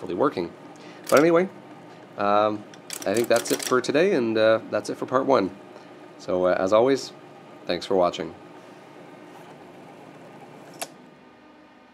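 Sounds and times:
electric typewriter motor humming: 0.0 - 11.0.

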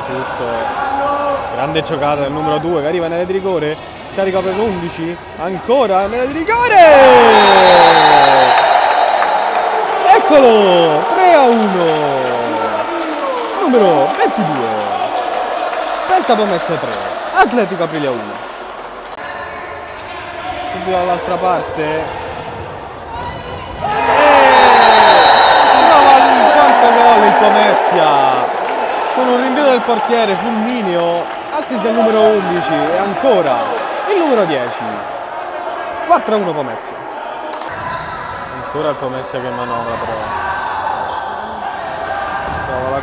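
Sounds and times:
players' voices echoing: 0.0 - 43.0
commentator shouting: 10.0 - 15.0.

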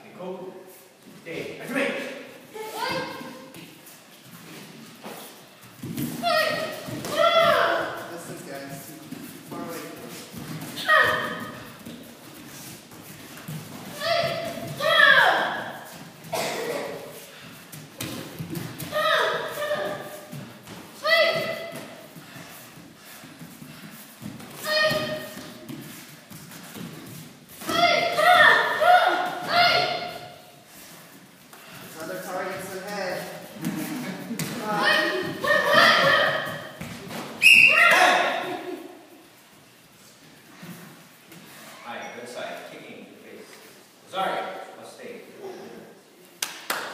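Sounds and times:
children's karate shouts: 2.6 - 3.5, 6.2 - 8.1, 10.8 - 11.7, 13.9 - 16.0, 18.8 - 20.4, 21.0 - 21.8, 24.6 - 25.4, 27.6 - 30.5, 34.6 - 36.8, 37.4 - 38.7.

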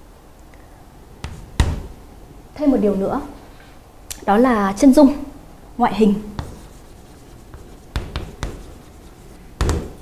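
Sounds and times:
pen tapping: 6.4 - 6.8, 7.5 - 8.8
pen scratching: 6.4 - 10.0.

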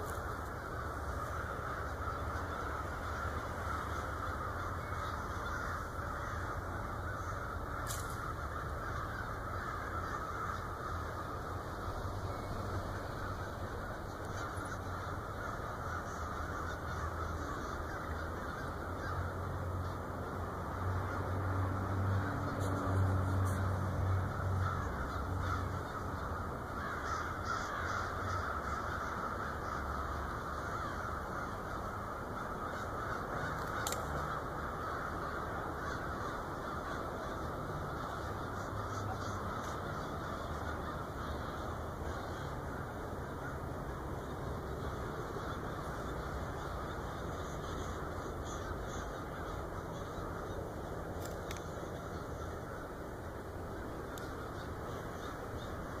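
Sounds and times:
flock of crows cawing: 0.0 - 56.0.

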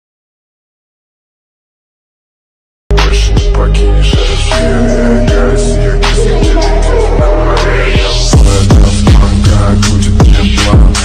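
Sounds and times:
deep booming bass hits: 4.2 - 11.0
rising synth sweep: 4.4 - 8.7.

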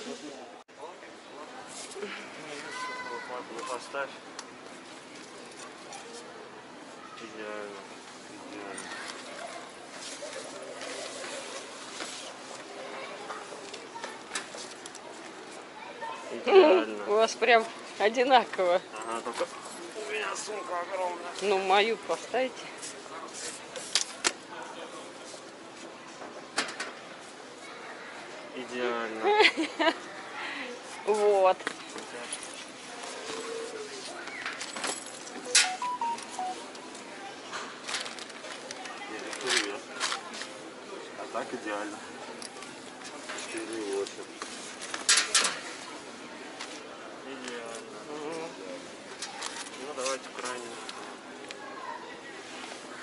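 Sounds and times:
steady background noise: 0.0 - 53.0.

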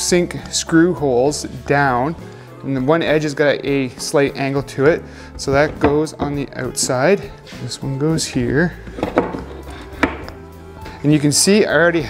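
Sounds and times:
quiet background music: 0.0 - 12.0
plastic boards knocking on wood: 5.5 - 7.0, 8.9 - 10.4.

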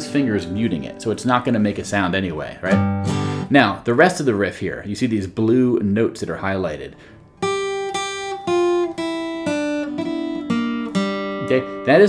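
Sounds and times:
acoustic guitar picking notes: 0.0 - 3.8, 7.0 - 12.0.

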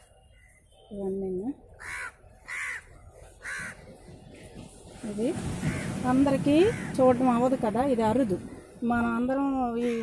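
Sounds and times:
crow cawing: 1.8 - 4.1, 5.6 - 7.3.

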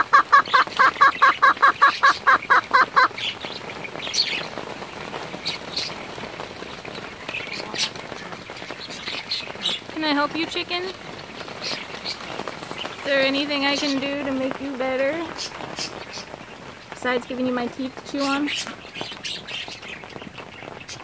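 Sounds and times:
hen calling: 0.0 - 4.5, 7.1 - 20.0
rain pattering: 0.0 - 21.0
sharp water drips: 0.0 - 21.0.

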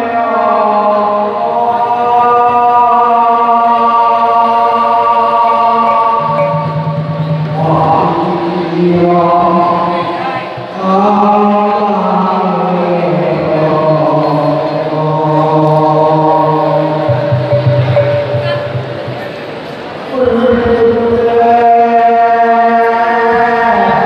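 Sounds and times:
man chanting into a microphone: 0.0 - 19.1, 20.1 - 24.0.

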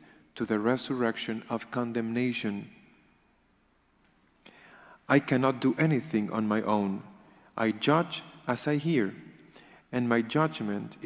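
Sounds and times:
faint intake of breath: 4.4 - 5.1, 9.4 - 9.9.

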